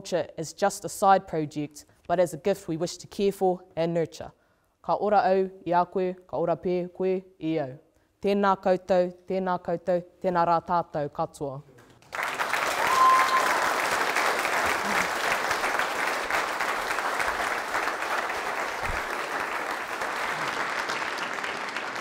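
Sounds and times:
audience applauding: 0:12.0 - 0:22.0
high call from crowd: 0:12.7 - 0:13.8.

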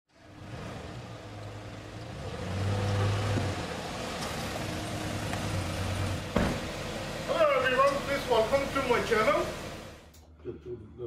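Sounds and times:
engine running low hum: 0:00.1 - 0:10.2.

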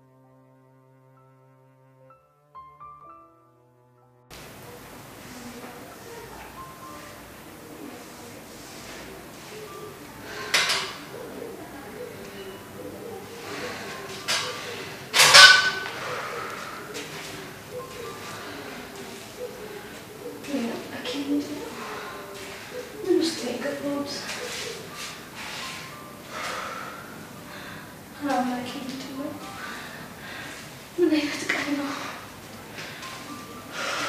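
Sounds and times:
dove cooing: 0:04.4 - 0:34.0
woman breathing heavily: 0:13.3 - 0:15.1, 0:15.9 - 0:17.4, 0:21.6 - 0:22.8, 0:25.4 - 0:28.1, 0:29.5 - 0:30.9, 0:31.8 - 0:34.0.

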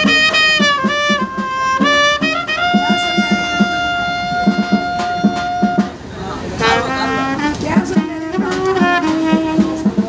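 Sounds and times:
low regular beat: 0:00.0 - 0:10.0
trumpet playing: 0:00.0 - 0:10.0.

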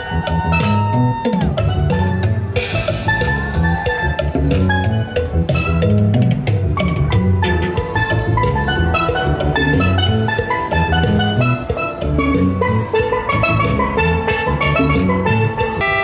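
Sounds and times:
backing drums: 0:00.0 - 0:16.0
steelpan melody: 0:00.0 - 0:16.0
walking bass line: 0:00.0 - 0:16.0.

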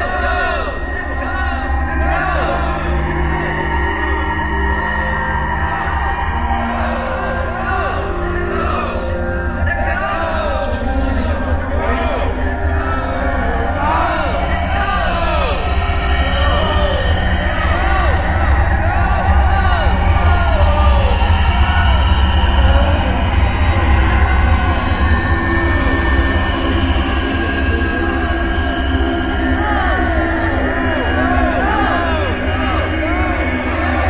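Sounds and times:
deep electronic drone: 0:00.0 - 0:34.0
processed voice-like glides: 0:00.0 - 0:34.0.

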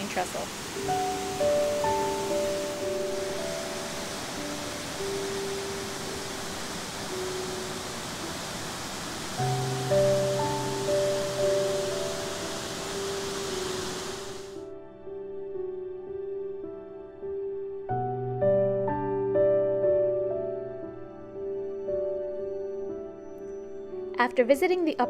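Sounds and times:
waterfall rushing: 0:00.0 - 0:14.6
soft background music: 0:00.0 - 0:25.0.

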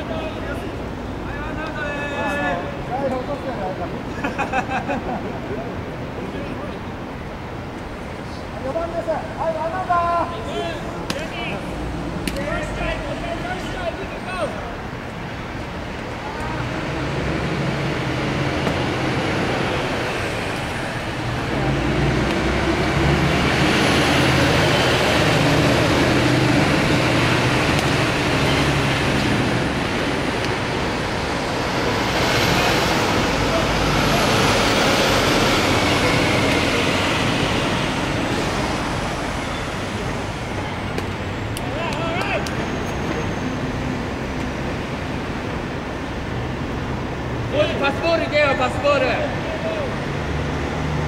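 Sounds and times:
traffic rumble: 0:00.0 - 0:51.0.

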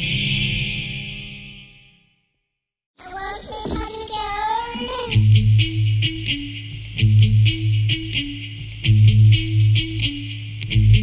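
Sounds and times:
high voice singing unaccompanied: 0:03.0 - 0:05.2.

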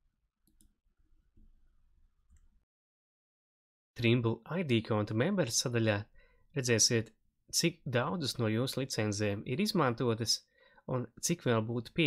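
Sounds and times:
computer mouse clicking: 0:00.4 - 0:00.7.

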